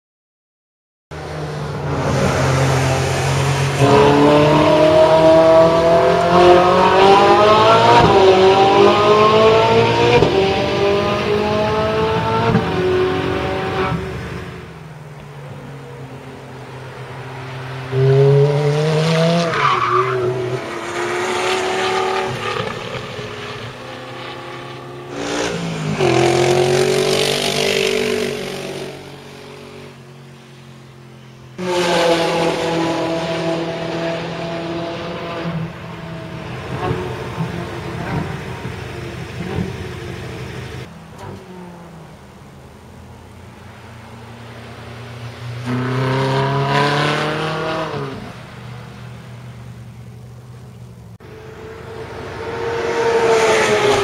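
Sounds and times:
sports car engines revving past: 0:01.2 - 0:54.0.

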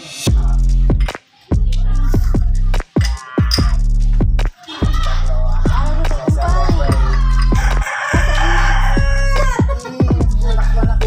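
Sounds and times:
hip-hop music with deep bass: 0:00.0 - 0:11.0
rooster crowing: 0:07.4 - 0:09.8.

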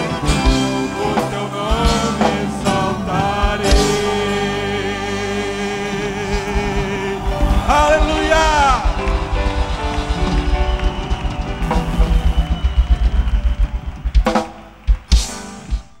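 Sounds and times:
fast drum kit beat: 0:00.0 - 0:16.0
gospel band music: 0:00.0 - 0:16.0.

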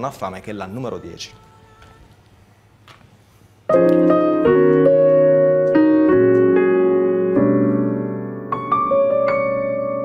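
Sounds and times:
piano playing slow chords: 0:03.7 - 0:10.0.

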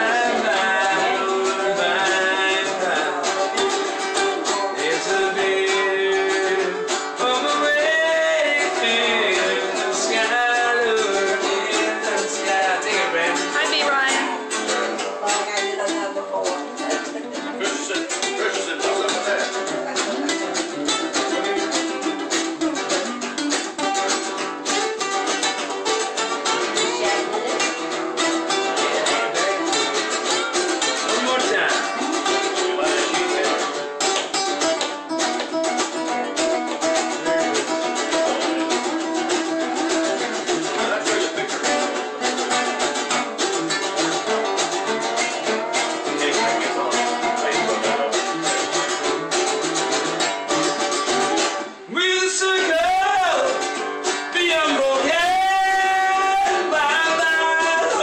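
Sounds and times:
man singing sliding pitch: 0:00.0 - 0:14.4, 0:54.3 - 0:58.0
acoustic guitars picking: 0:00.0 - 0:58.0.

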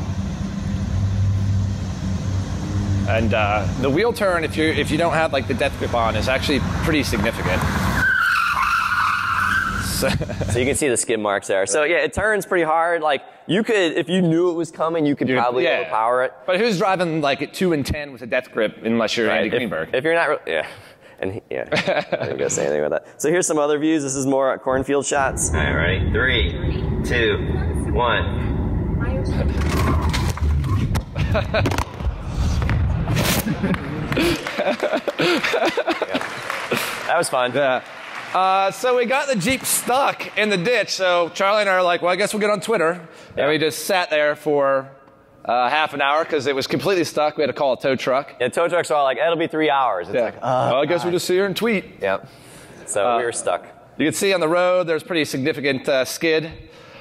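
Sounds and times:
people talking: 0:03.1 - 0:07.6, 0:09.8 - 0:29.9, 0:33.4 - 0:37.8, 0:38.4 - 0:44.9, 0:45.5 - 0:52.2, 0:52.9 - 0:56.6
tyres squealing on asphalt: 0:05.8 - 0:10.1
people laughing: 0:09.9 - 0:10.8, 0:21.6 - 0:22.8, 0:31.1 - 0:32.0, 0:33.3 - 0:37.8.

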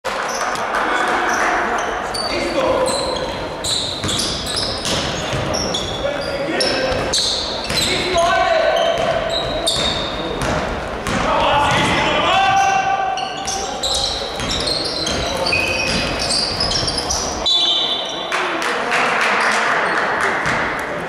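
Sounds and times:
shoes squeaking on gym floor: 0:00.1 - 0:10.7, 0:12.6 - 0:18.3
players' voices: 0:00.1 - 0:21.0
basketball dribbling: 0:03.9 - 0:06.3, 0:09.0 - 0:12.1, 0:13.4 - 0:17.2.

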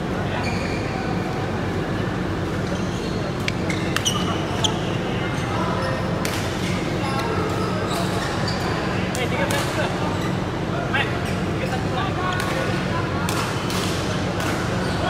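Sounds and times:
background chatter: 0:00.0 - 0:15.0
shoes squeaking on court: 0:00.3 - 0:01.0, 0:02.6 - 0:08.9.

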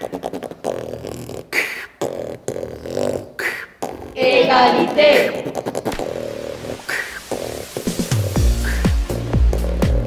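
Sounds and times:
beatbox mouth percussion: 0:00.0 - 0:10.0.

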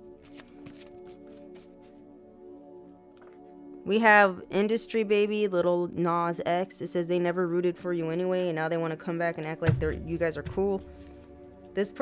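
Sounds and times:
soft background music: 0:00.0 - 0:12.0
cards being shuffled: 0:00.2 - 0:01.9.

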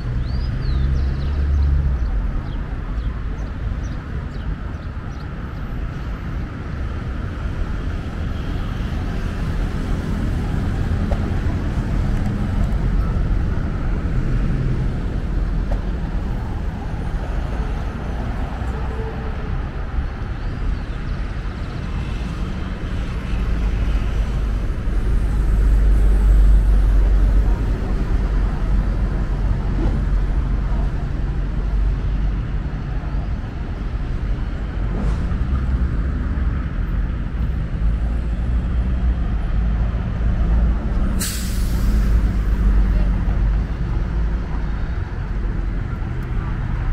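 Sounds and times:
bus passing rumble: 0:00.0 - 0:46.9
street traffic: 0:00.0 - 0:46.9
bus air brake hiss: 0:41.1 - 0:42.6.

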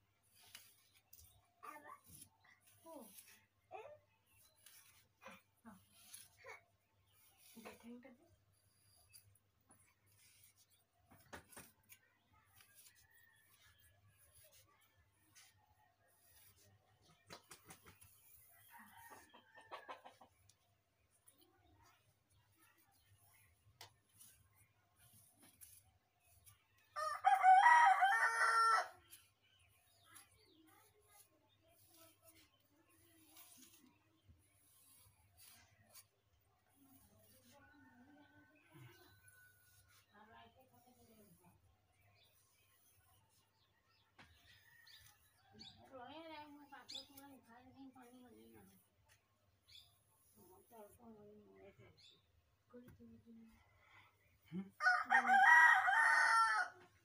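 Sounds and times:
rooster crowing: 0:54.8 - 0:56.8.

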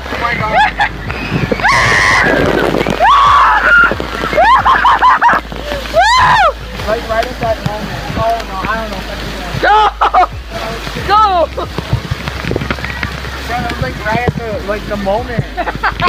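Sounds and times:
water spraying and splashing: 0:00.0 - 0:16.0
people shouting and shrieking: 0:00.1 - 0:06.8, 0:09.5 - 0:10.4.

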